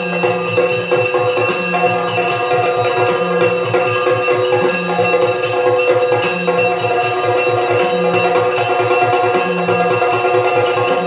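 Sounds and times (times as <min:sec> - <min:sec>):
cymbals ringing: 0:00.0 - 0:11.0
jingling bells: 0:00.0 - 0:11.0.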